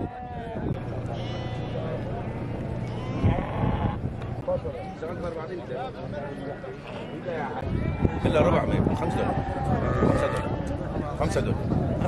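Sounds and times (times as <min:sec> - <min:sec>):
people chattering: 0:00.0 - 0:12.0
sheep bleating: 0:01.0 - 0:04.0.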